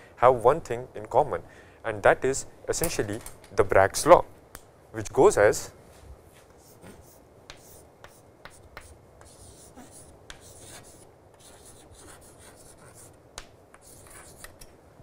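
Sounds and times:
chalk scratching on chalkboard: 6.6s - 13.2s, 13.8s - 14.6s
chalk tapping on chalkboard: 6.6s - 14.6s.

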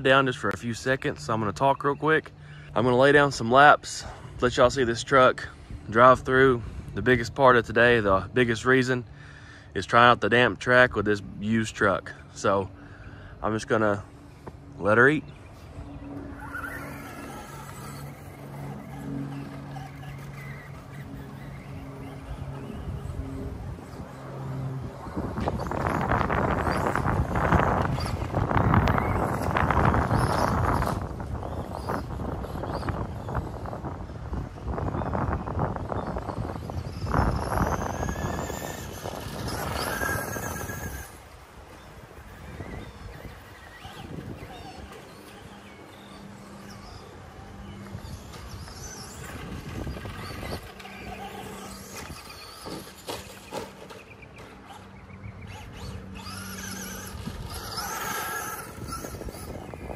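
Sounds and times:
wind on microphone: 14.3s - 59.9s
toy truck electric motor whining: 16.1s - 59.9s.

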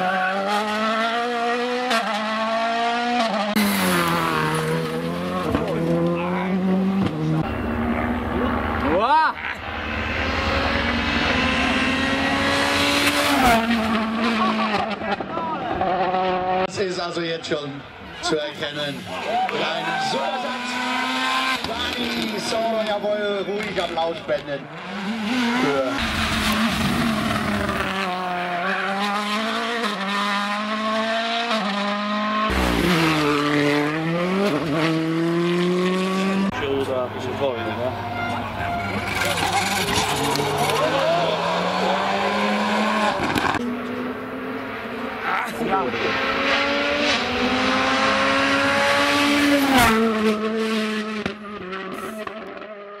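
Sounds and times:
car engine slowing and accelerating: 0.0s - 16.8s, 24.7s - 53.0s
rally car engines revving high: 0.0s - 53.0s.

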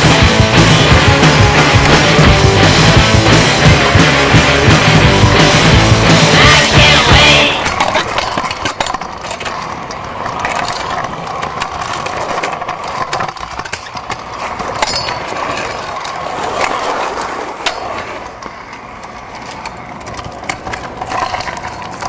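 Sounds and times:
scooter wheels rolling on concrete: 0.0s - 22.0s
scooter deck clicks and knocks: 6.4s - 22.0s.

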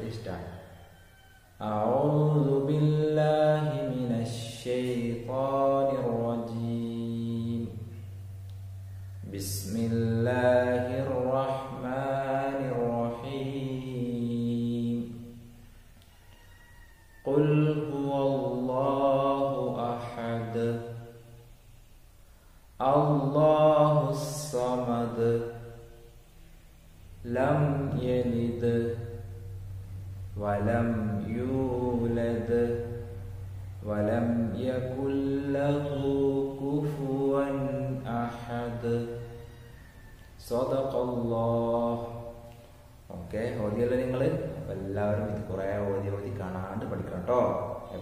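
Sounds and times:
man chanting melodically: 0.0s - 15.6s, 17.2s - 21.4s, 22.8s - 26.2s, 27.1s - 48.0s.

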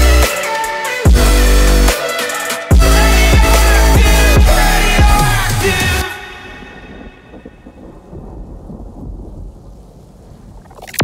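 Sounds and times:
thunder-like rumble: 6.5s - 11.0s
rain-like hiss: 6.6s - 11.0s.

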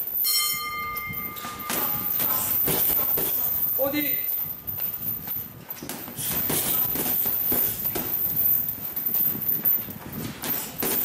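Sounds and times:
gloves thudding on heavy bag: 1.6s - 3.5s, 5.8s - 8.4s, 10.0s - 11.0s.

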